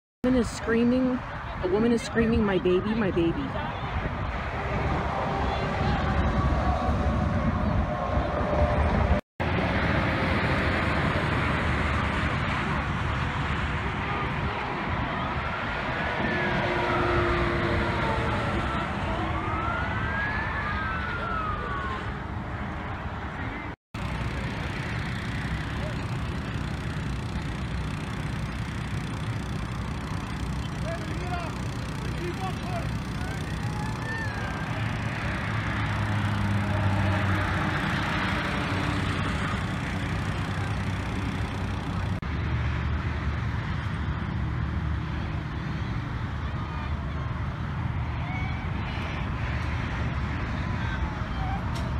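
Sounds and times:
low engine hum: 0.2 - 51.9
road traffic noise: 0.2 - 51.9
emergency vehicle siren wailing: 4.4 - 9.2, 14.5 - 22.5, 29.4 - 40.5.

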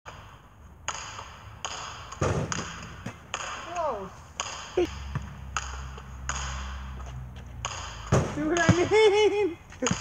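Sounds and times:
basketball bouncing on asphalt: 0.1 - 10.0
heavy ball thud: 2.2 - 3.6, 4.4 - 9.0.

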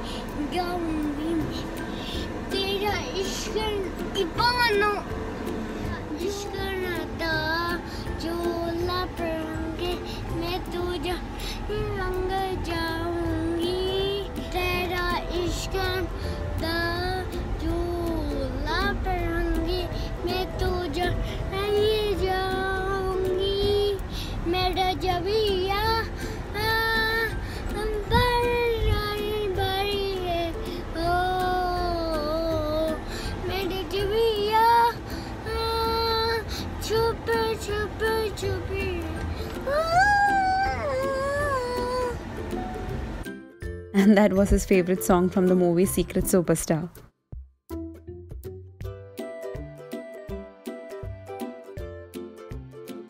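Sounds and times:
young boy singing: 0.0 - 1.8, 2.4 - 5.1, 5.9 - 42.2
car cabin road rumble: 0.0 - 43.3.

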